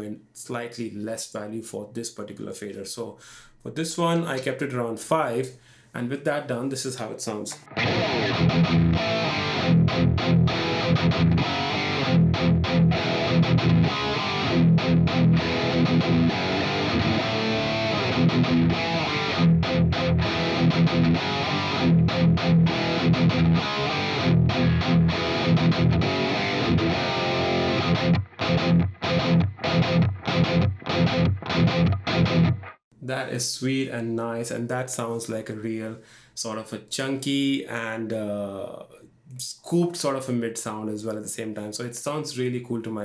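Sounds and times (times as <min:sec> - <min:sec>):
high-gain electric guitar riff: 0:07.6 - 0:32.8.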